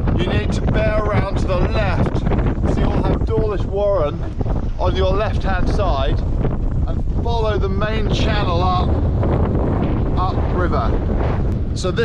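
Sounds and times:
wind buffeting microphone: 0.0 - 12.0
man talking: 0.1 - 6.2, 6.9 - 9.0, 10.2 - 11.0, 11.8 - 12.0.

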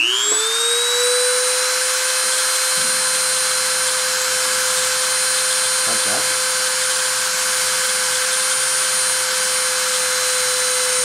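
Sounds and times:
rotary tool high whine: 0.0 - 11.0.

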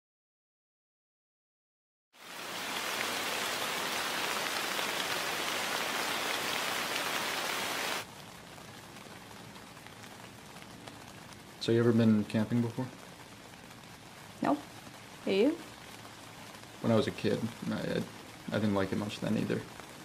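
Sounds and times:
heavy rain falling: 2.2 - 20.0.

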